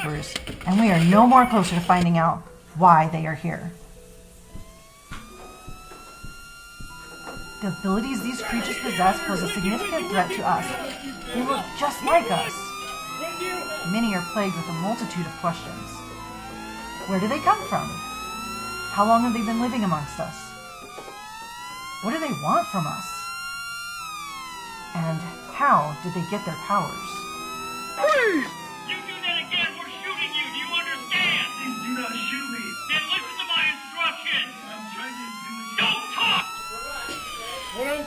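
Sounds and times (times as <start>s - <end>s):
siren wailing: 0.0s - 38.0s.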